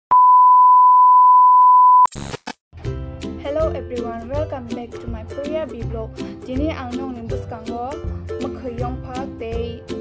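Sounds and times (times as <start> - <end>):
high-pitched test tone beep: 0.1 - 2.1.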